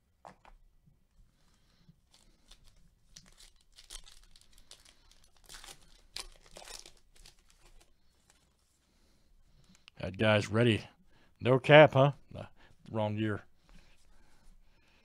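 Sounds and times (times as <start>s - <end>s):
foil wrapper tearing and crinkling: 2.1s - 8.5s.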